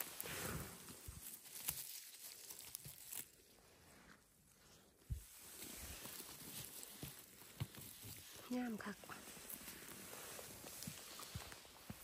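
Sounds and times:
rustling of leaves and grass: 0:00.0 - 0:12.0.

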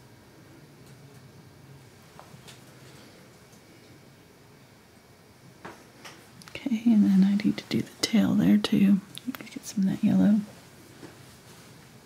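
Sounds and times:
woman talking softly: 0:06.5 - 0:10.5.

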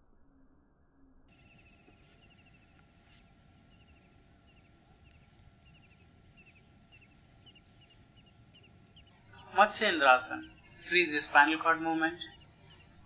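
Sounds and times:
small high chirps: 0:01.3 - 0:13.0.

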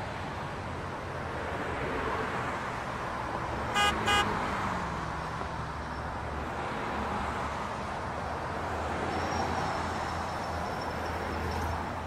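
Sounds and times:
city road traffic: 0:00.0 - 0:12.0
vehicle horn toots: 0:03.8 - 0:04.4.

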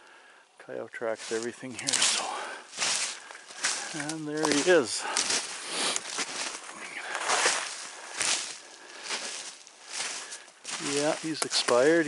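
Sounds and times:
brush and twigs rustling: 0:00.8 - 0:12.0
footsteps through snow and leaves: 0:01.1 - 0:12.0.

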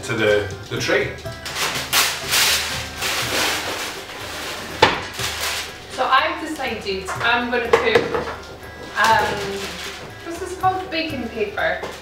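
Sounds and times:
parchment paper rustling: 0:01.4 - 0:07.4, 0:08.0 - 0:11.1.

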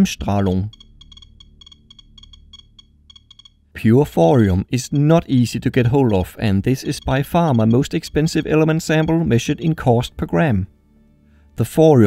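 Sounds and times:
geiger counter clicking: 0:00.0 - 0:10.1.

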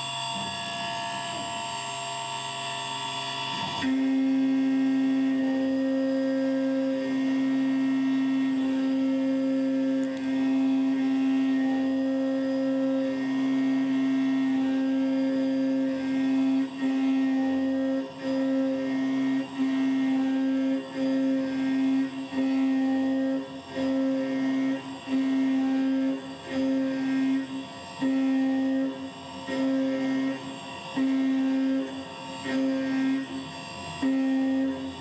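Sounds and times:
milling machine cutting metal: 0:00.0 - 0:35.0.

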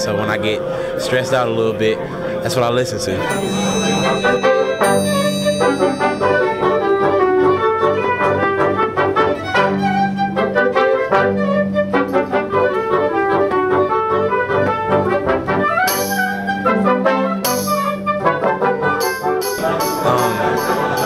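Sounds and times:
strings and brass ensemble: 0:01.7 - 0:21.0
jingling hand percussion: 0:03.3 - 0:07.8, 0:15.9 - 0:16.5, 0:17.5 - 0:18.0, 0:19.0 - 0:21.0.

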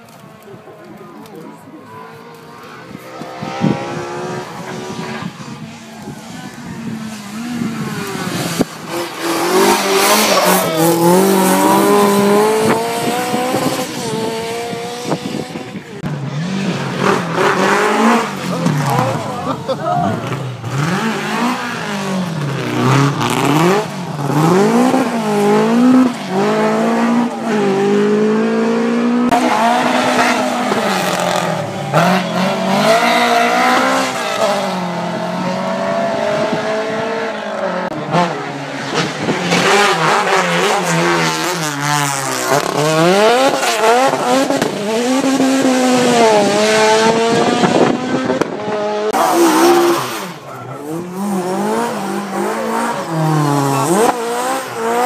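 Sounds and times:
rally car engine revving: 0:00.1 - 0:55.0.

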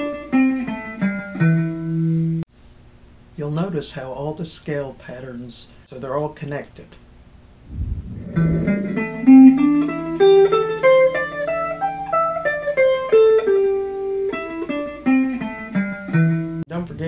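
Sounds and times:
short low thud: 0:07.6 - 0:09.2
electric guitar scale: 0:08.0 - 0:16.6.

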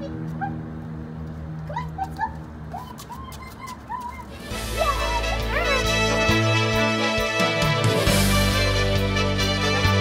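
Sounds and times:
puppy whining in high yips: 0:01.7 - 0:04.3.

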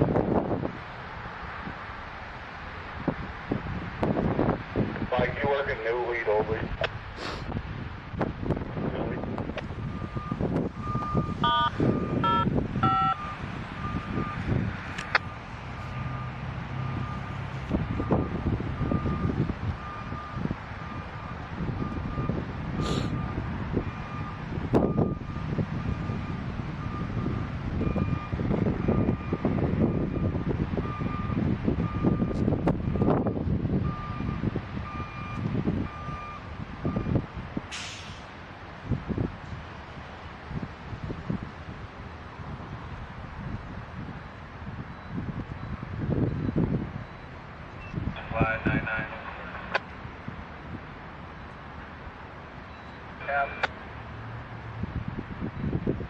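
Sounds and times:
wind rumbling on microphone: 0:00.0 - 0:37.7, 0:38.3 - 0:56.0
truck backup alarm beeping: 0:09.7 - 0:37.2, 0:44.8 - 0:49.8, 0:52.6 - 0:53.7.

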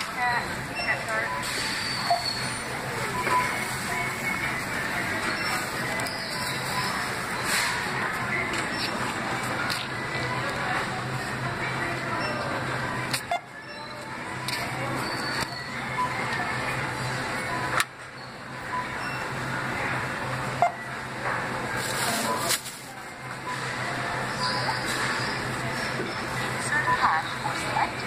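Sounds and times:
distant talk: 0:00.0 - 0:28.0.

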